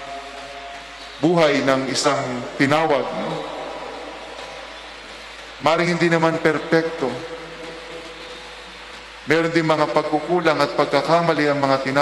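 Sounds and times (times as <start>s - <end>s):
man speaking in reverberant church: 0.0s - 4.2s, 5.6s - 8.2s, 9.2s - 12.0s
faint steady hum: 0.0s - 12.0s.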